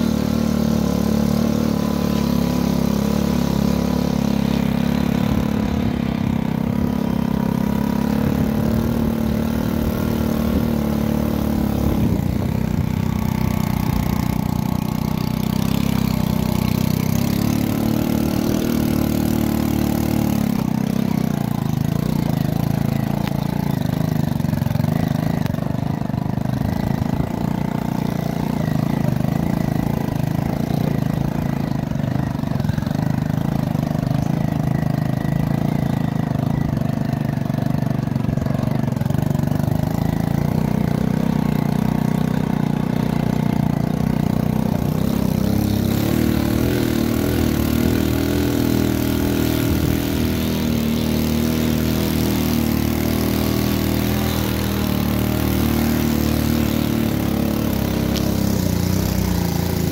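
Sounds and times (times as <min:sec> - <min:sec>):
vehicle engine running: 0:00.0 - 0:59.9.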